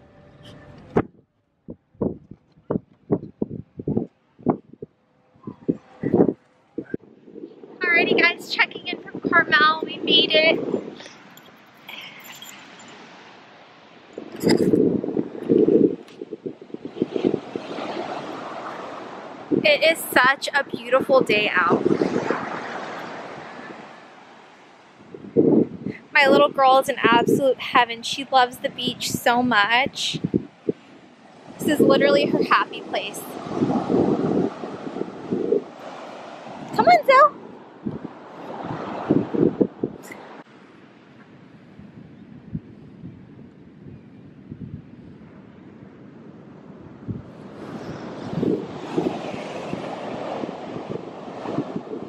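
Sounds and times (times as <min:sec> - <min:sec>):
wind buffeting microphone: 0:00.0 - 0:52.0
breaking surf: 0:07.6 - 0:41.8, 0:45.8 - 0:52.0.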